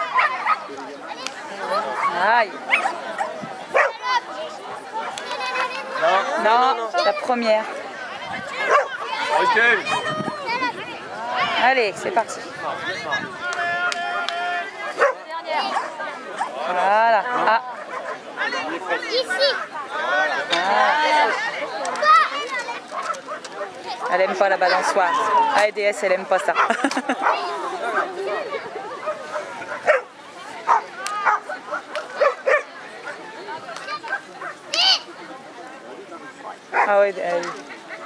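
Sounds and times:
dog barking and yipping: 1.9 - 4.0, 8.6 - 10.1, 14.8 - 16.5, 29.0 - 30.1, 30.7 - 33.2.

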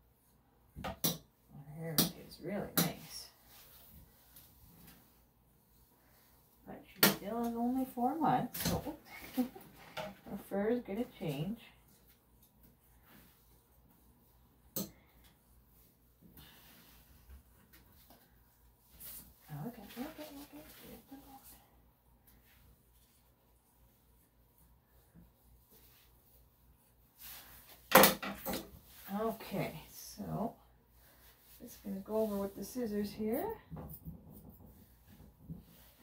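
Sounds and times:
soft speech: 19.5 - 21.6.

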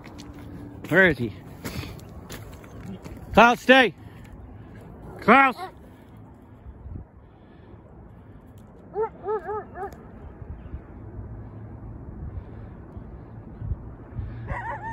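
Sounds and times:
wind rumble: 0.0 - 14.9
coyote yipping: 8.9 - 10.0, 14.5 - 14.9.

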